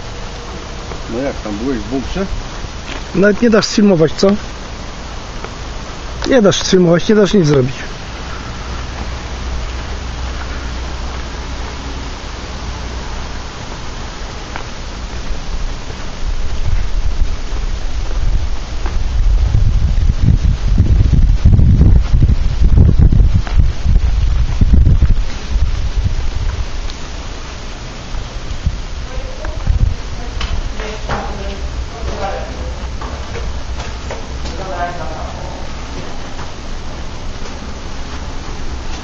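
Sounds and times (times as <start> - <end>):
wind buffeting microphone: 7.4 - 39.0.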